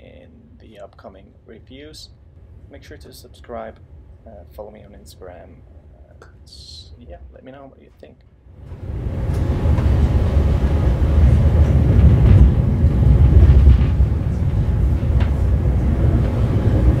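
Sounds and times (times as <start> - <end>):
train rumbling on rails: 8.6 - 17.0
faint rail clicks: 9.2 - 17.0.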